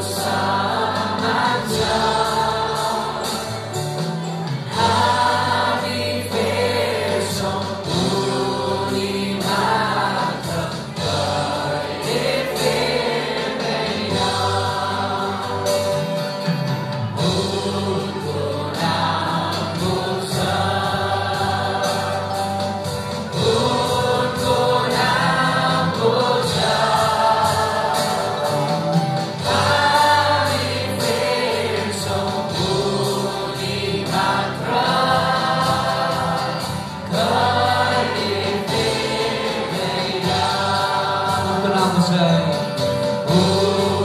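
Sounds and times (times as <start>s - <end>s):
group singing worship song: 0.0s - 44.0s
strummed acoustic guitar: 0.0s - 44.0s.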